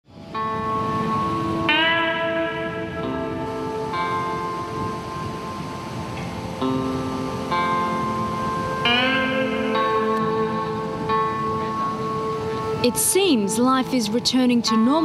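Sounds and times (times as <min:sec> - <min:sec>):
theme music with ringing notes: 0:00.2 - 0:15.0.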